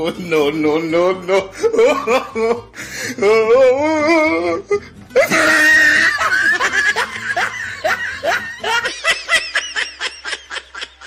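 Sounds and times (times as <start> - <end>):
rapid laughter: 5.2 - 11.0.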